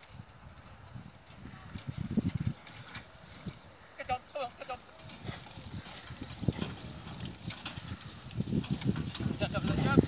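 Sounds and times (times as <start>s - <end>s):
pony hoofbeats on grass: 4.5s - 10.0s.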